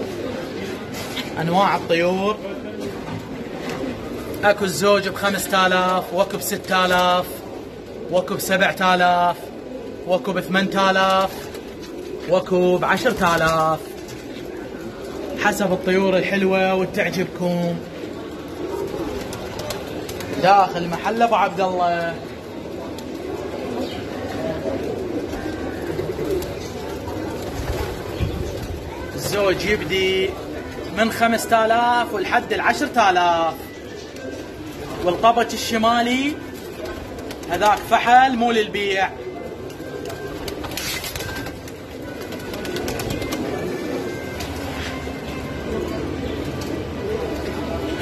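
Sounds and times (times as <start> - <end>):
pigeons cooing: 0.0 - 48.0
wings fluttering: 18.3 - 20.5, 39.6 - 45.1.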